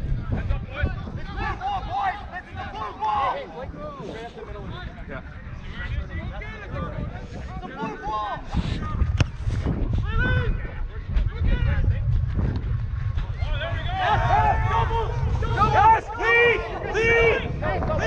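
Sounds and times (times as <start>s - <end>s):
low wind rumble: 0.0s - 18.0s.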